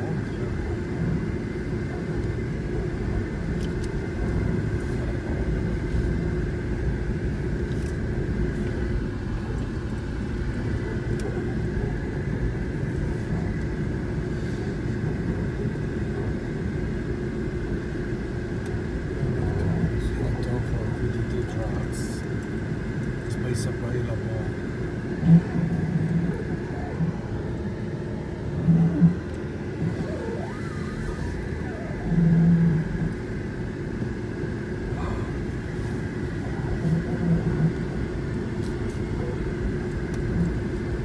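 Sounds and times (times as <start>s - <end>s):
engine and tyre rumble: 0.0s - 41.0s
steady high hum: 0.0s - 41.0s.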